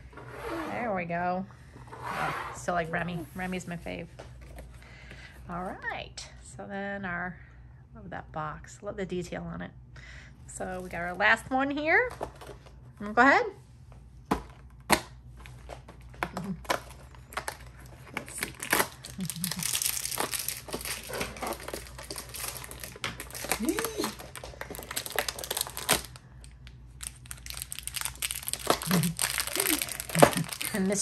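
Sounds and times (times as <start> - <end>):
plastic wrapper crinkling and tearing: 15.4 - 31.0.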